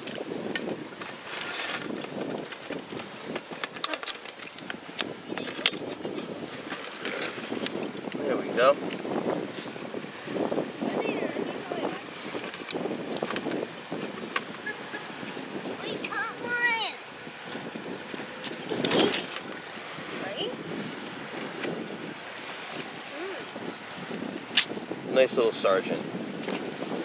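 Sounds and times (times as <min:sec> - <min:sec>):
wind on microphone: 0:00.0 - 0:27.0.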